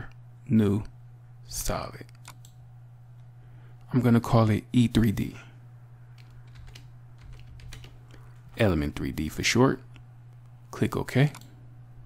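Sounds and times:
low steady hum: 0:00.0 - 0:12.0
keyboard typing: 0:06.2 - 0:08.6.

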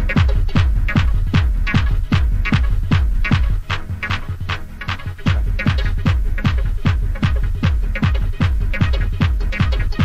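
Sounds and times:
bright hi-hats: 0:00.0 - 0:10.0
techno kick drum beat: 0:00.0 - 0:10.0.

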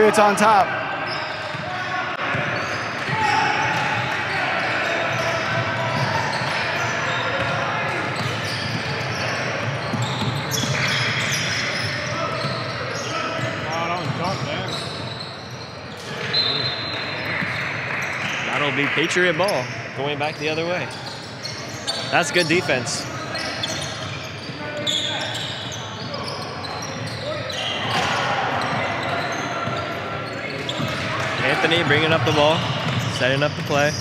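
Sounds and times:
voices and shouts: 0:00.0 - 0:09.6, 0:21.9 - 0:34.0.

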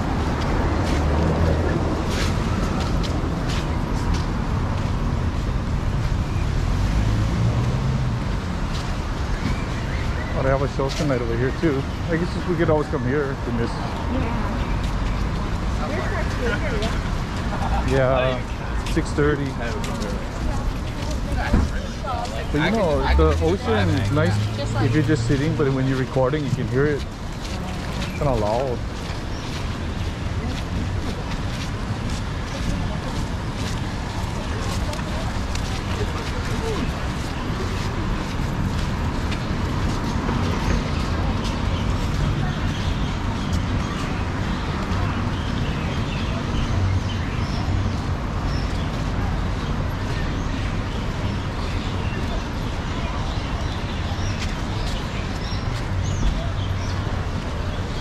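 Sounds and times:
footsteps: 0:00.0 - 0:08.0, 0:13.8 - 0:45.1
crowd noise: 0:00.0 - 0:58.0
faint voices of passers-by: 0:00.0 - 0:58.0
street traffic: 0:00.0 - 0:58.0.

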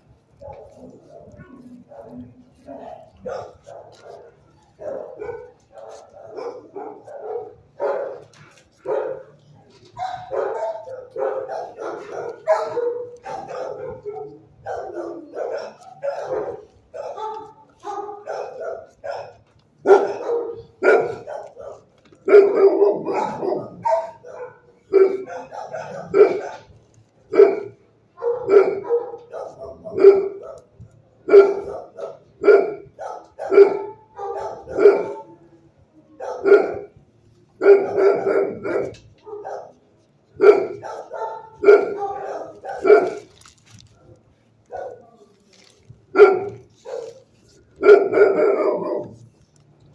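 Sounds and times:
dog barking: 0:00.3 - 0:37.0, 0:37.6 - 0:49.4.

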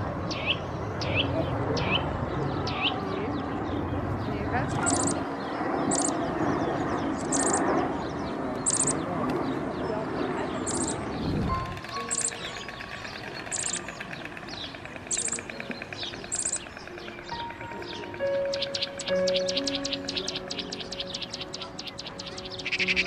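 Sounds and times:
murmur of voices: 0:00.0 - 0:23.0
small bird chirping: 0:04.7 - 0:07.8, 0:08.6 - 0:09.1, 0:10.4 - 0:23.0
soft music with held notes: 0:16.9 - 0:23.0.

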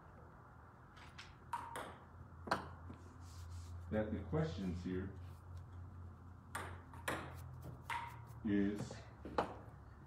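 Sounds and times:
low steady hum: 0:00.0 - 0:10.0
marker writing on whiteboard: 0:06.6 - 0:08.5.

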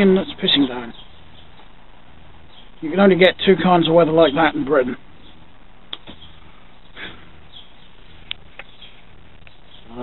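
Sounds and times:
rain hissing: 0:00.0 - 0:10.0.

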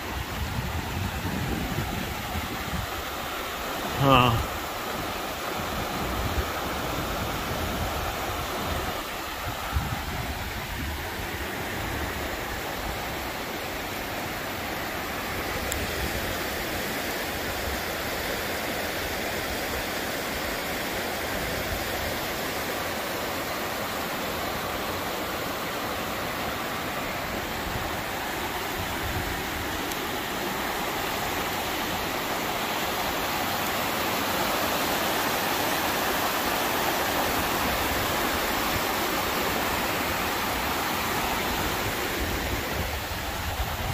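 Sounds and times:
river water rushing over rocks: 0:00.0 - 0:43.9.

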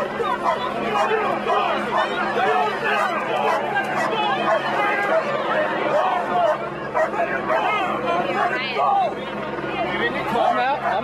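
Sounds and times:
crowd babble of many voices: 0:00.0 - 0:11.0.

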